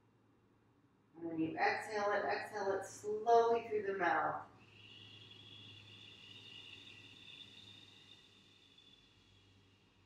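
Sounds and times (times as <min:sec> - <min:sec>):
whistling exhale through mouth: 0:04.6 - 0:09.5.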